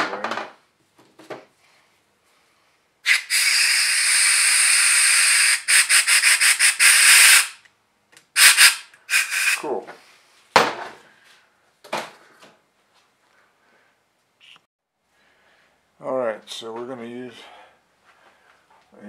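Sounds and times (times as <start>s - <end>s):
compressed air blow gun hissing: 3.1s - 7.6s, 8.4s - 9.7s.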